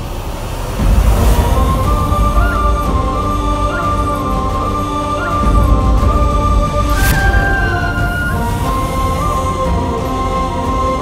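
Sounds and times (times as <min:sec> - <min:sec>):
deep rumbling drone: 0:00.0 - 0:11.0
whoosh: 0:05.0 - 0:10.3
high held note: 0:06.2 - 0:10.2.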